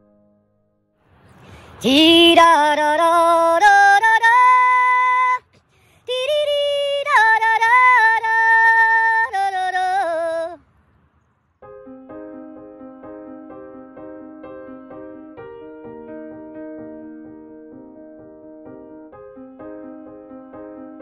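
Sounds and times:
piano: 0.0 - 10.6, 11.6 - 21.0
high solo voice singing: 1.7 - 10.6.

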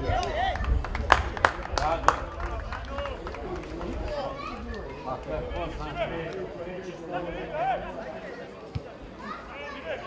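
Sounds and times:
players calling and shouting: 2.8 - 10.0.

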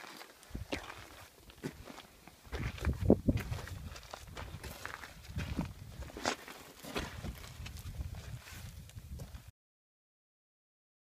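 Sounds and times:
footsteps on gravel: 0.0 - 9.5.

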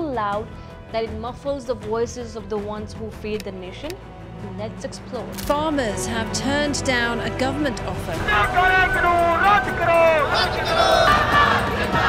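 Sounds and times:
high-pitched shouting voices: 9.5 - 12.0.

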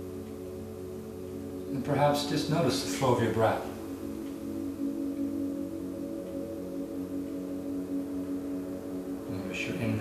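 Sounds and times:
ambient music with ringing tones: 0.0 - 10.0.

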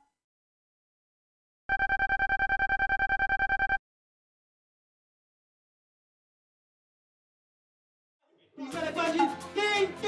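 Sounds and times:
rapid short text-scroll beeps: 1.7 - 3.8.

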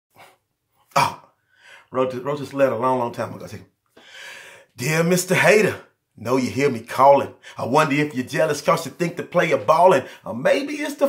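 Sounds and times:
faint breath: 1.4 - 1.9, 4.0 - 4.8.

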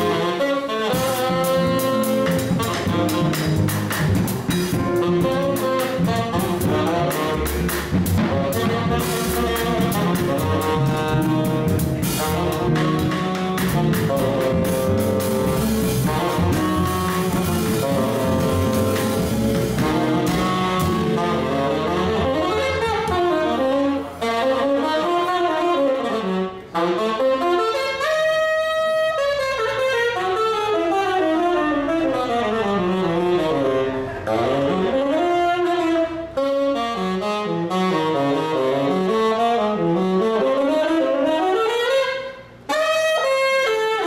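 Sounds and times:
upright bass: 0.0 - 25.9
drums: 0.0 - 31.5
tenor saxophone soloing: 0.0 - 44.0.

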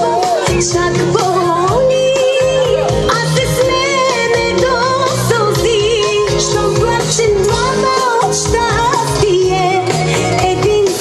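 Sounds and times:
live band music with singing: 0.0 - 11.0.

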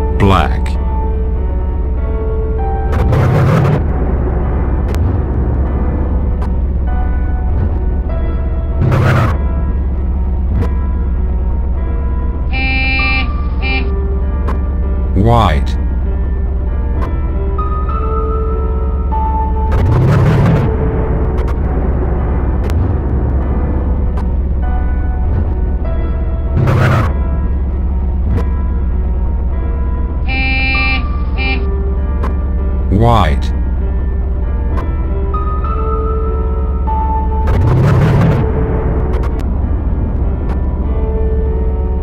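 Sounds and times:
background music with low bass: 0.0 - 42.0
low engine drone: 0.0 - 42.0
vehicle horn honking: 12.5 - 14.0, 30.2 - 31.7.

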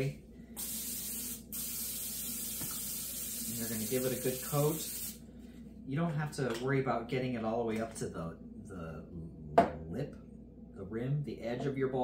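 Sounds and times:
aerosol spray can hissing: 0.6 - 5.2.

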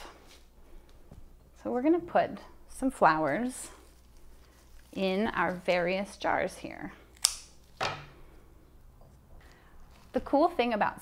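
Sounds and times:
scissors snipping flower stem: 7.1 - 7.5.

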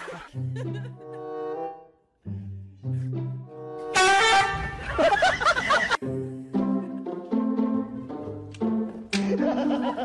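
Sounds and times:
background music: 0.0 - 10.0
loud horn-like blast: 3.9 - 4.8.

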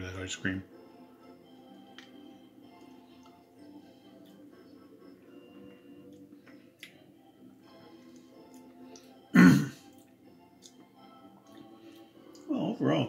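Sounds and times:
faint background music: 0.0 - 13.0
man clearing throat: 9.4 - 9.8.

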